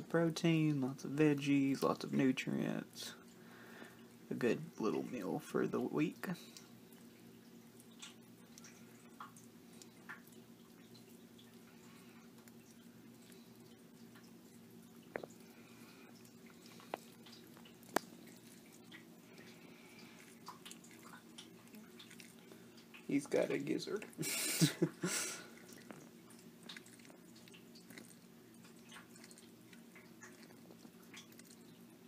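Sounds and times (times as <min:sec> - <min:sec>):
steady low hum: 0:00.0 - 0:32.0
lizard chewing with wet clicks: 0:06.4 - 0:32.0.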